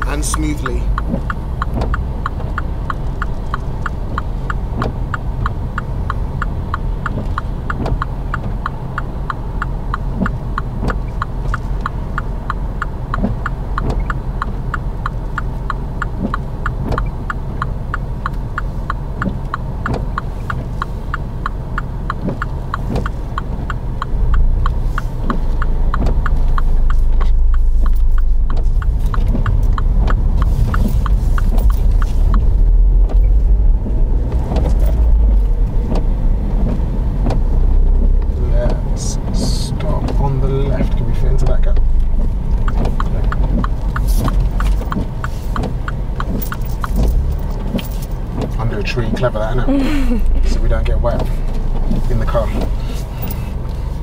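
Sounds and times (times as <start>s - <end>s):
car engine idling: 0.0s - 54.0s
car turn indicator ticking: 0.0s - 54.0s
road noise: 0.0s - 54.0s.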